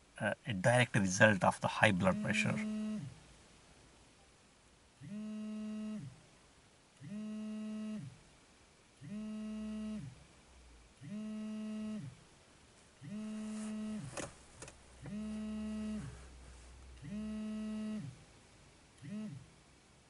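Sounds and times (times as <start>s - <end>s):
mobile phone vibrating: 2.0s - 3.2s, 5.0s - 6.2s, 7.0s - 8.2s, 9.0s - 10.2s, 11.0s - 12.2s, 13.0s - 14.2s, 15.0s - 16.3s, 17.0s - 18.2s, 19.0s - 19.5s.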